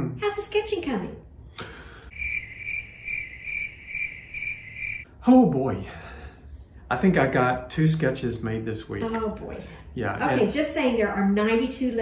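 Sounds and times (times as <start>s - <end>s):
high-pitched insect chirping: 2.1s - 5.1s.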